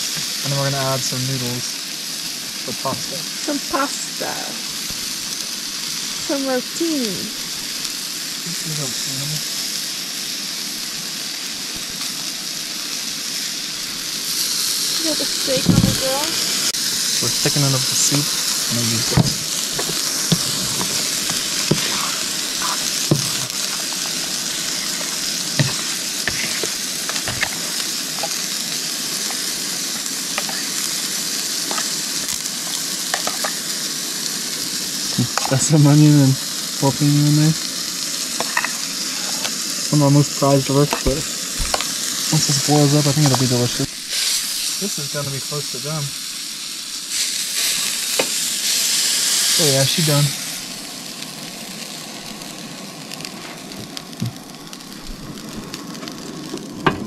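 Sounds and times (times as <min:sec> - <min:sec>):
pot hissing on the heat: 0:00.0 - 0:57.0
steak sizzling on a griddle: 0:00.0 - 0:57.0
cutlery clinking against a pot: 0:33.2 - 0:33.6, 0:38.4 - 0:38.8.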